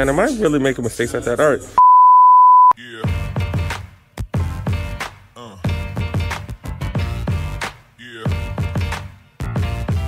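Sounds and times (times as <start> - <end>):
test tone beep: 1.8 - 2.8.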